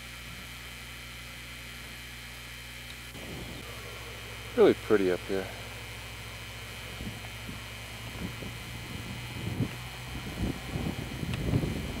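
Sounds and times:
low hum and hiss: 0.0 - 12.0
wind buffeting microphone: 3.2 - 3.7, 6.8 - 12.0.

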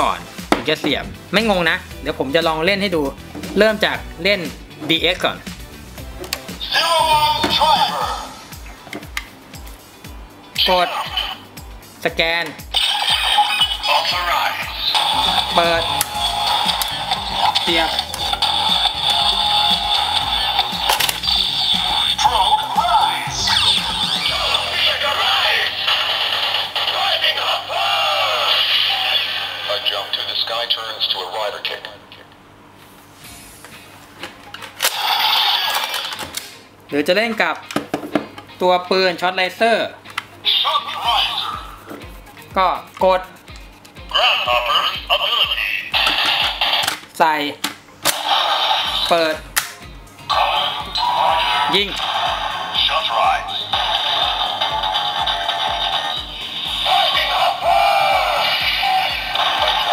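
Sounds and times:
toy belt electronic music: 12.6 - 29.6, 40.4 - 47.0, 48.1 - 49.4, 50.3 - 59.9
looping electronic standby tune: 14.7 - 25.1.

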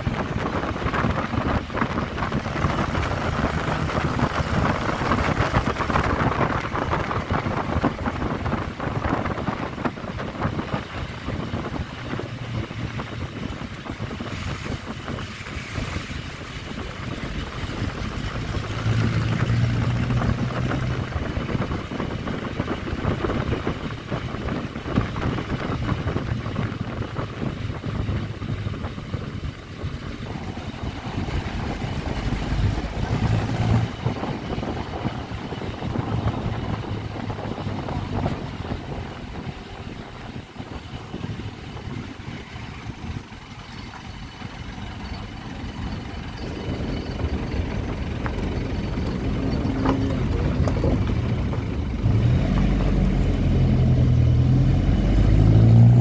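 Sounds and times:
vehicle engine and road noise: 0.0 - 56.0
wind rushing at microphone: 0.0 - 56.0.

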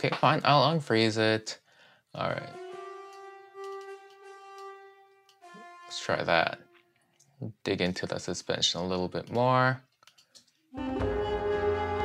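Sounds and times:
horn holding a note: 2.2 - 7.0.

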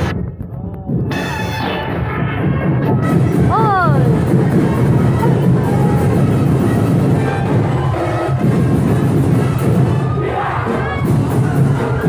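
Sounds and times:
drum-heavy street-dance music: 0.0 - 12.0
crowd shouting: 3.3 - 12.0.

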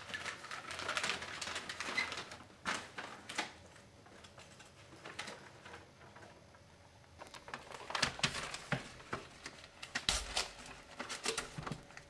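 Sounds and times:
paper crinkling and rustling: 0.0 - 6.4, 7.2 - 12.0.

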